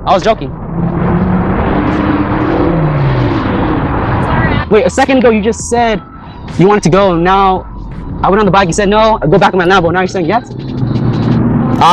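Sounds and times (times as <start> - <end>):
vehicle engine running: 0.0 - 11.9.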